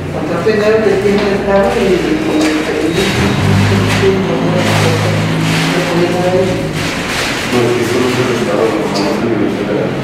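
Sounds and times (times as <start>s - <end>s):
voices in a room: 0.0s - 10.0s
low engine hum: 1.9s - 8.5s.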